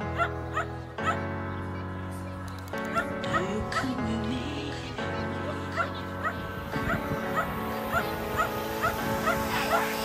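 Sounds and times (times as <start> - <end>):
background music sustained tones: 0.0 - 10.0
dog barking and yipping: 0.2 - 1.2, 5.7 - 10.0.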